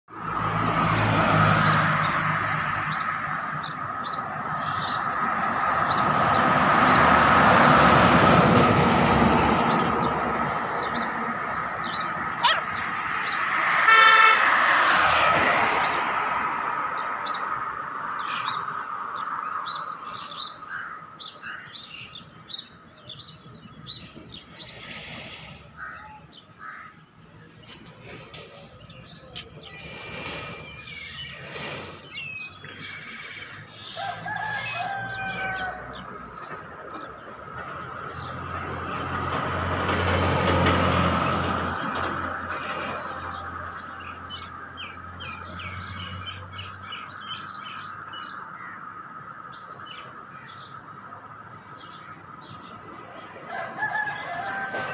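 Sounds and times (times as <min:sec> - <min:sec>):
passing road traffic: 0:00.1 - 0:54.9
vehicle horn: 0:13.8 - 0:14.7.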